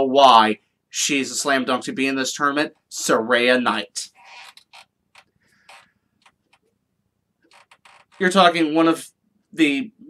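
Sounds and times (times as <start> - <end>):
small clicks and creaks: 4.1 - 6.8, 7.4 - 8.4.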